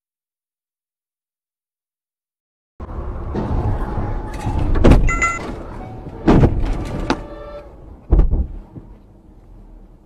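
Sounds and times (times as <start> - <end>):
road noise: 2.8 - 10.0
vehicle crash impact: 3.1 - 7.3.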